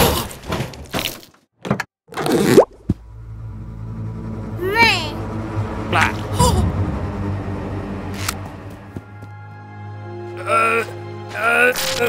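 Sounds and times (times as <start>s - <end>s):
low steady music: 3.0s - 12.0s.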